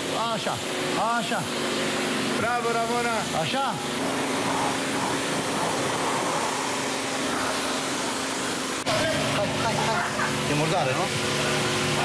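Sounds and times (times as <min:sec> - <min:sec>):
pressure washer spraying water: 0:00.0 - 0:12.0
pump hum: 0:00.0 - 0:12.0.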